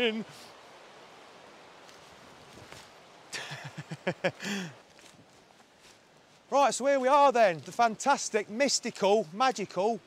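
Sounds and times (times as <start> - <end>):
outdoor background hiss: 0.0 - 10.0
slight rustles: 1.8 - 3.0, 4.3 - 8.0.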